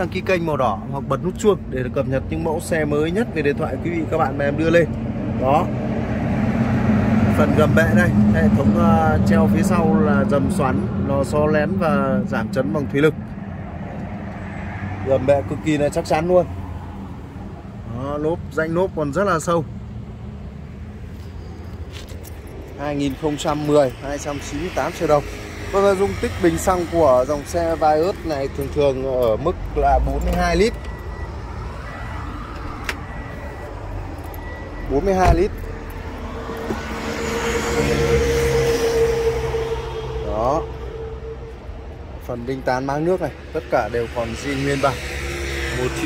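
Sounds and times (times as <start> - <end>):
road traffic rumble: 0.0 - 46.0.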